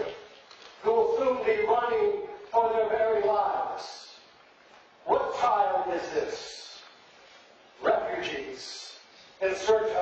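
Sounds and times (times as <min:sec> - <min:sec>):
man speaking in reverberant hall: 0:00.0 - 0:10.0.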